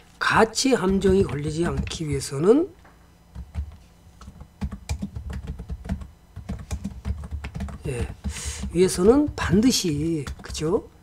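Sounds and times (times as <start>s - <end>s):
computer keyboard typing: 0.8s - 2.4s, 3.3s - 10.8s.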